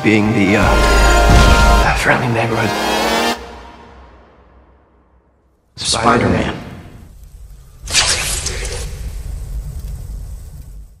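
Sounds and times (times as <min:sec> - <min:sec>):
low cinematic impact rumble: 0:00.6 - 0:02.4
hiss: 0:07.2 - 0:11.0.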